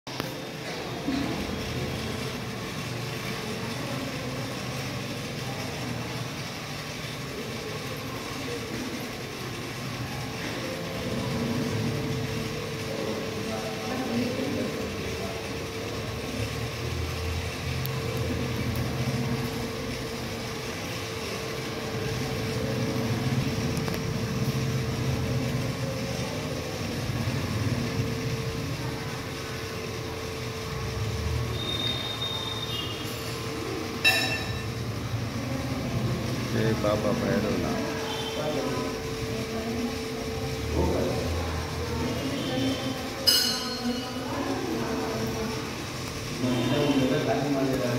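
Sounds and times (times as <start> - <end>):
murmur of voices: 0.2 - 31.8, 33.0 - 47.9.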